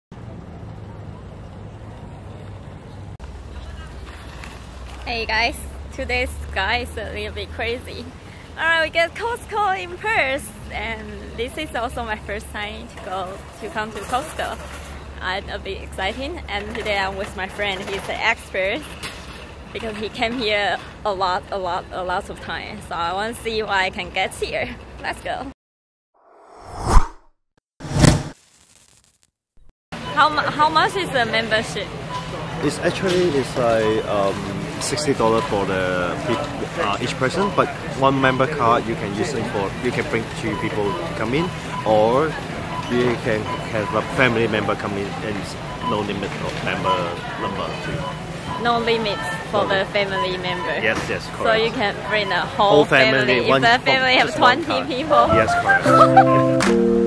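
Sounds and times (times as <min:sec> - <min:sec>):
traffic rumble and hiss: 0:00.2 - 0:25.4, 0:30.0 - 0:55.8
whooshes: 0:26.2 - 0:28.4.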